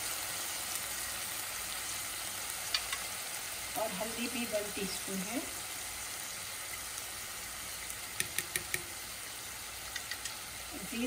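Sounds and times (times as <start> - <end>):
food frying in oil: 0.0 - 11.0.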